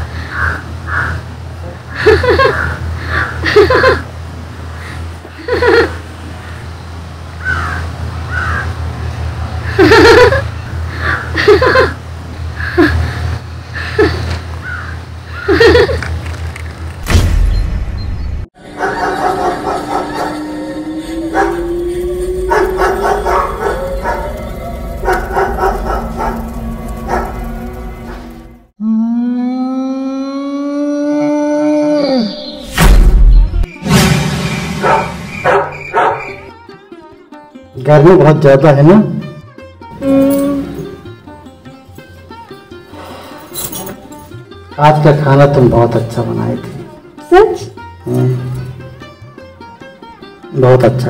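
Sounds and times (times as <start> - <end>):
bird calling: 7.4 - 8.8, 14.0 - 15.8, 31.8 - 33.6, 34.4 - 36.6
dog howling: 18.6 - 28.6
horror background music: 18.6 - 28.7, 31.3 - 47.1.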